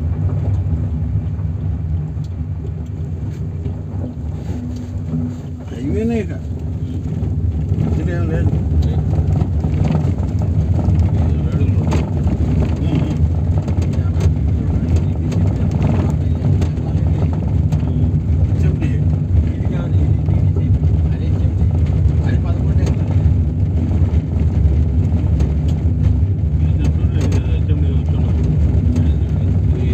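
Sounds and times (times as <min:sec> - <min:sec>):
car engine rumble: 0:00.0 - 0:29.9
tyres on unpaved road: 0:00.0 - 0:29.9.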